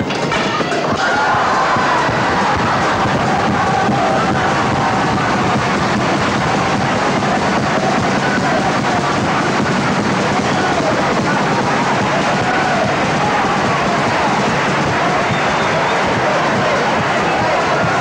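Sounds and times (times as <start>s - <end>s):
crowd noise: 0.0s - 18.0s
live carnival group music: 0.0s - 18.0s.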